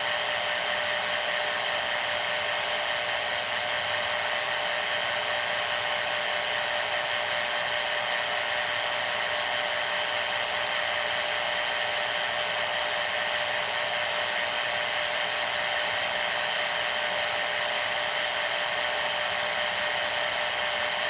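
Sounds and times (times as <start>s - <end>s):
radio static hiss: 0.0s - 21.0s.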